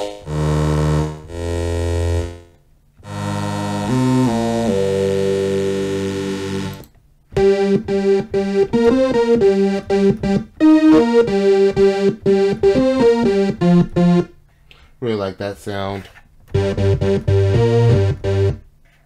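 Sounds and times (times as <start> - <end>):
synthesizer chords and notes: 3.0 - 14.4, 16.5 - 18.7.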